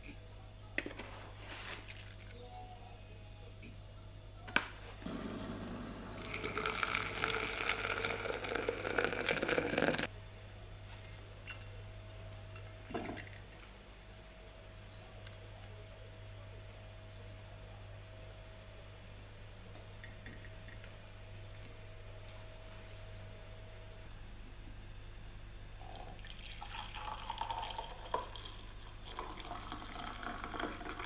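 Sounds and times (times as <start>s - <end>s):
water pouring into glass: 6.0s - 10.1s, 25.9s - 31.0s.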